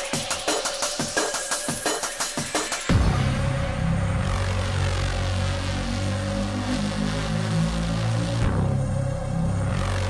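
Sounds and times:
droning synth bass: 2.9s - 10.0s.

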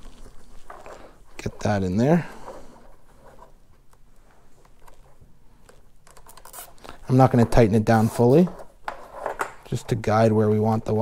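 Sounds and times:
small clicks and scrapes: 0.0s - 10.0s
rustling and scratching on plastic: 0.0s - 11.0s.

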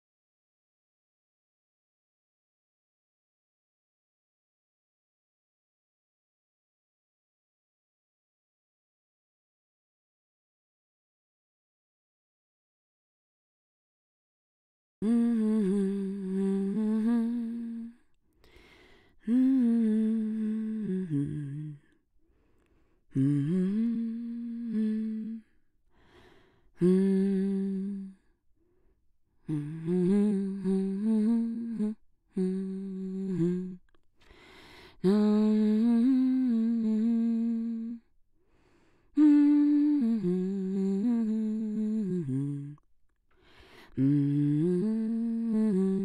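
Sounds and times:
person humming: 15.0s - 18.0s, 19.2s - 22.0s, 23.1s - 25.5s, 26.8s - 28.2s, 29.5s - 33.9s, 35.0s - 38.1s, 39.2s - 42.8s, 43.9s - 46.0s.

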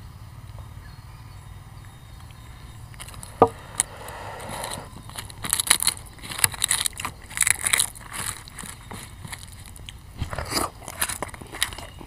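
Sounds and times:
chewing: 2.3s - 12.0s
small crackles and clicks: 5.1s - 12.0s.

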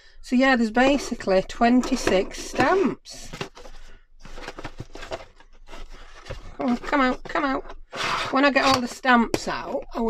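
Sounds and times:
packaging rustling: 1.9s - 8.4s.

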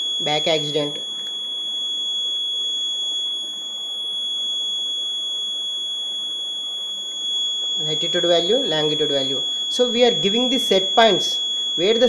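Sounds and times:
high-pitched electronic buzzer tone: 0.0s - 12.0s.

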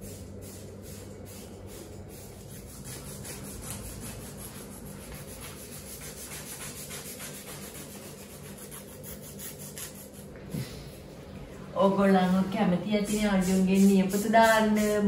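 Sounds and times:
nail file rubbing nails: 0.3s - 10.3s.

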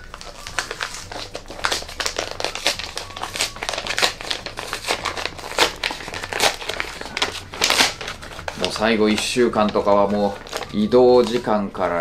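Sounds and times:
paper envelope tearing: 0.0s - 12.0s.

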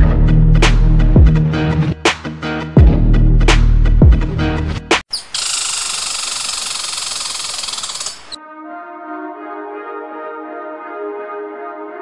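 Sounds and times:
high fluttering hiss effect: 5.3s - 8.4s.

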